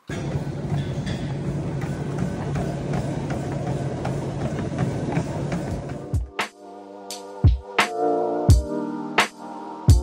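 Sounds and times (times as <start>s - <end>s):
treadmill motor hum: 0.0s - 6.3s
footfalls on treadmill belt: 0.1s - 6.3s.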